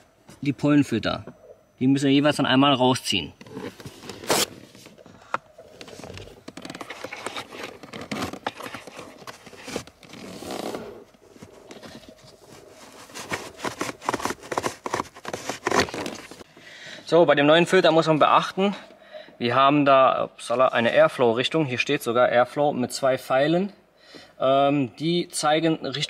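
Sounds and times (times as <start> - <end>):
air filter scraping plastic housing: 3.4 - 16.4.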